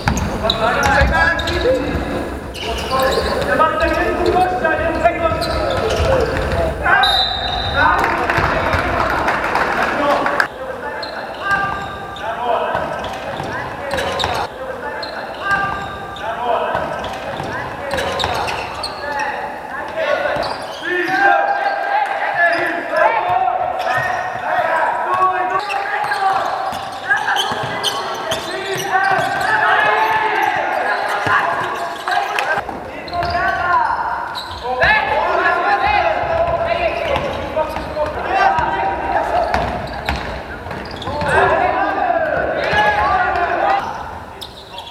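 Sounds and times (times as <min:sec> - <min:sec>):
basketball bouncing on court: 0:00.0 - 0:02.0, 0:07.6 - 0:09.2, 0:26.0 - 0:30.2, 0:35.9 - 0:38.8, 0:39.4 - 0:41.6
players shouting: 0:00.2 - 0:44.4.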